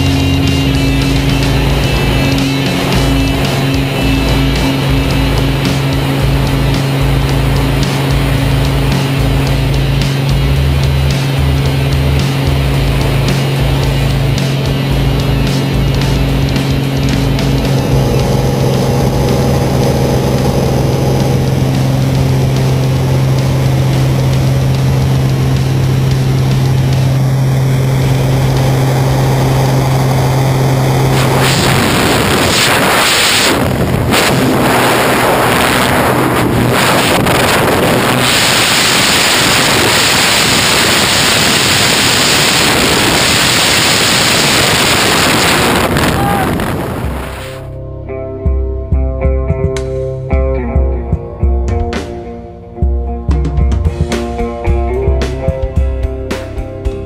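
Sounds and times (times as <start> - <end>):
piston plane engine droning: 0.0 - 57.0
gusty wind on microphone: 11.2 - 47.7.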